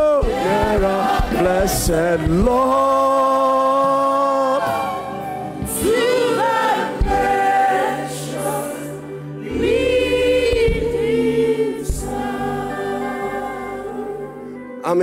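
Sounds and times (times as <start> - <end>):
congregation singing gospel song: 0.0 - 15.0.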